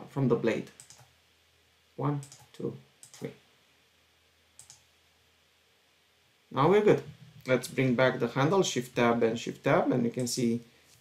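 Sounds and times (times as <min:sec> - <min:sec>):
computer mouse clicks: 0:00.8 - 0:01.1, 0:02.2 - 0:03.3, 0:04.6 - 0:04.9.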